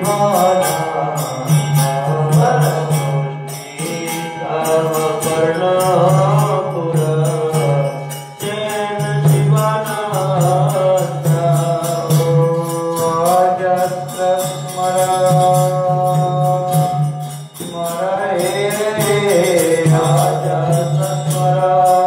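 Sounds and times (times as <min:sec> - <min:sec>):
devotional chanting: 0:00.0 - 0:22.0
metallic percussion beat: 0:00.0 - 0:22.0.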